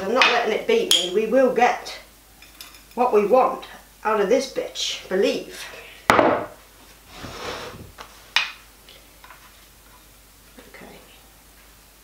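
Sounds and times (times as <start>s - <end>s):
knock on wooden worktop: 6.1s - 6.5s.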